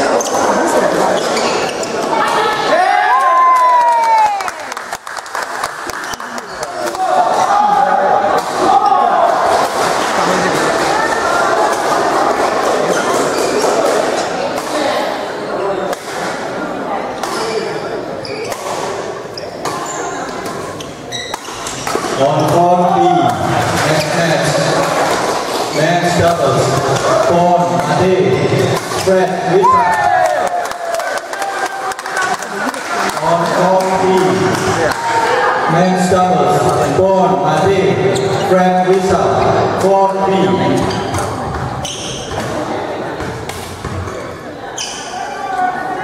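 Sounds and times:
many people talking: 0.0s - 46.0s
rackets hitting shuttlecocks: 19.6s - 22.6s.

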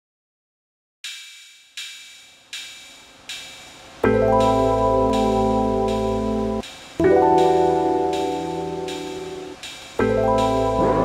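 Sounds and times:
percussion count-in ticks: 1.0s - 11.0s
backing track: 3.3s - 11.0s.

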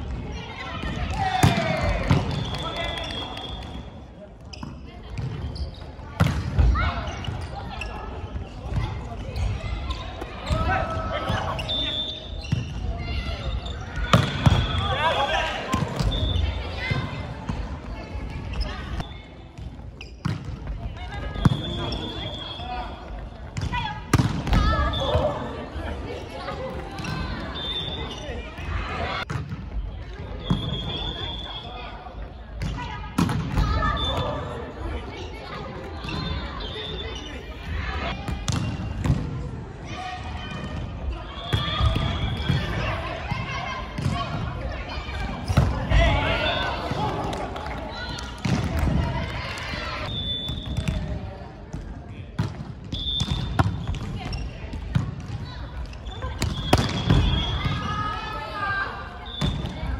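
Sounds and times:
players shouting: 0.5s - 3.6s, 9.4s - 12.2s, 12.9s - 17.6s, 39.8s - 50.4s, 55.4s - 59.9s
volleyball slaps: 1.1s - 3.8s, 14.0s - 14.9s, 23.6s - 25.2s, 46.8s - 49.4s, 52.4s - 55.4s, 56.3s - 57.9s.

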